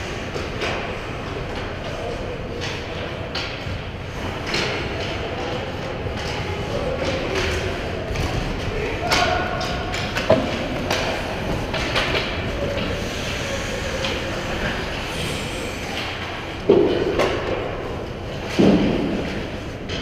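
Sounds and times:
players' voices: 0:00.0 - 0:20.0
stick and puck clacks: 0:00.1 - 0:15.0, 0:15.8 - 0:20.0.

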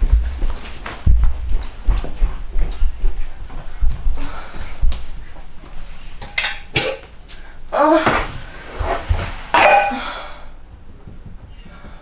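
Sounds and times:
metal tin clinking and knocking: 0:06.2 - 0:07.0.

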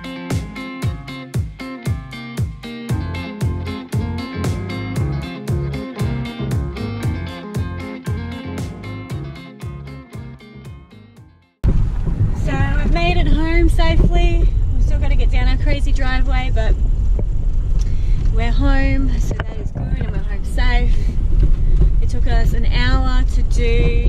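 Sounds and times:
strummed guitar music: 0:00.0 - 0:11.5
car cabin road rumble: 0:11.6 - 0:24.0.

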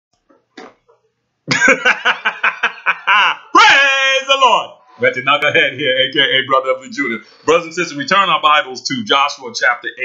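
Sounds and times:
man laughing loudly: 0:01.5 - 0:04.2.

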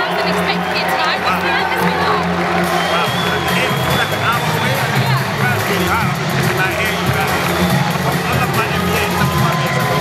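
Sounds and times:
crowd hubbub: 0:00.0 - 0:10.0
music over loudspeakers: 0:00.0 - 0:10.0
man talking: 0:02.8 - 0:10.0.

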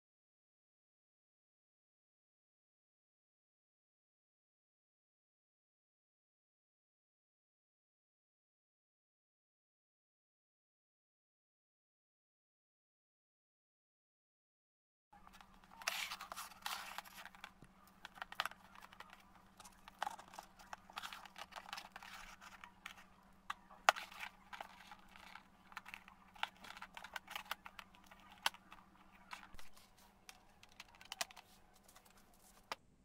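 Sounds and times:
plastic cup clicking and crinkling: 0:15.2 - 0:32.8
steady low hum: 0:15.2 - 0:33.0.

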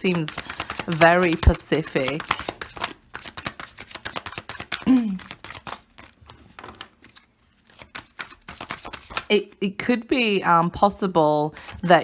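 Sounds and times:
cards being shuffled: 0:00.0 - 0:09.3.

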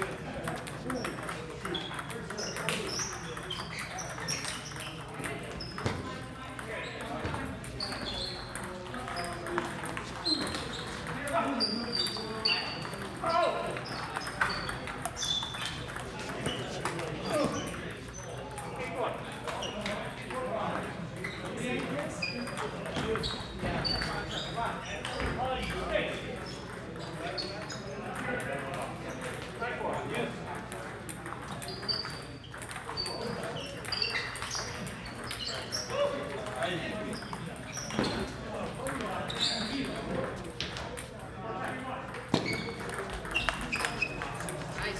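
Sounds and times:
table tennis ball hitting paddles: 0:00.0 - 0:24.4, 0:26.4 - 0:44.9
voices talking in a hall: 0:00.0 - 0:44.9.

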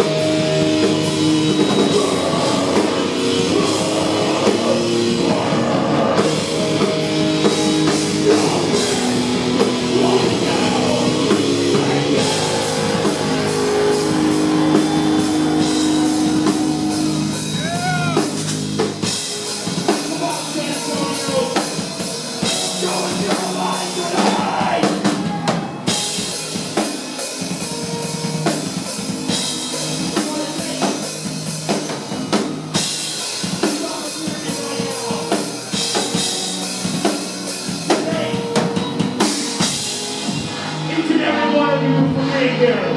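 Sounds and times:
drum kit: 0:00.0 - 0:41.6
electric guitar: 0:00.0 - 0:42.9
heavy metal band playing live: 0:00.0 - 0:42.9.

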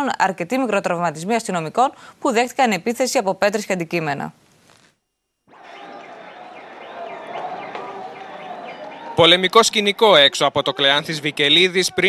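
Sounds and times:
crowd shouting: 0:05.5 - 0:12.0.

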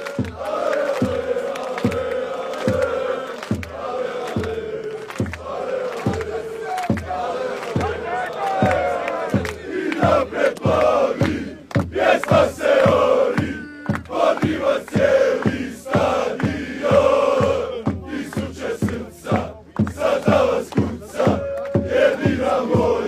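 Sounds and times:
crowd chanting: 0:00.0 - 0:23.0
steady beat: 0:00.0 - 0:23.0.

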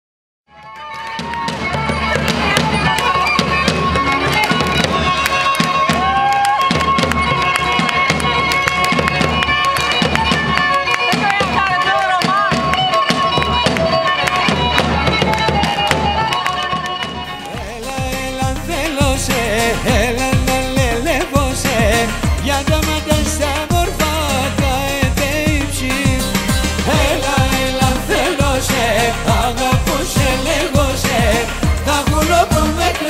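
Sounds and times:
shrill reed wind instrument melody: 0:00.6 - 0:11.0.

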